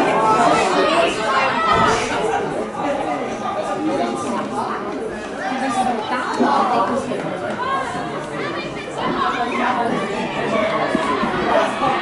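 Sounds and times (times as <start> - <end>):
chatter of spectators: 0.0 - 12.0.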